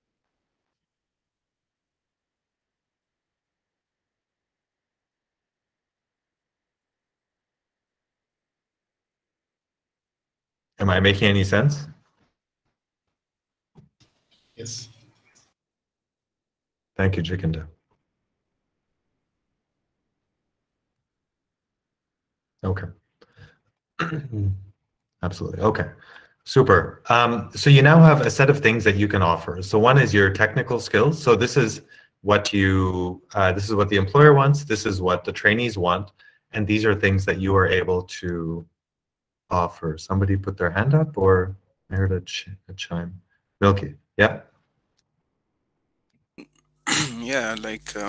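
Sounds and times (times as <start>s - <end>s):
man speaking: 10.8s - 12.0s, 17.0s - 17.7s, 25.2s - 38.6s, 46.9s - 48.0s
man clearing his throat: 24.0s - 24.6s, 46.4s - 48.0s.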